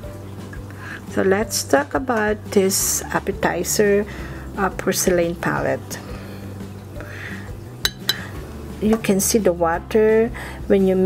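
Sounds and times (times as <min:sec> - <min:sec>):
paintbrush clinking on porcelain: 0:07.8 - 0:08.3.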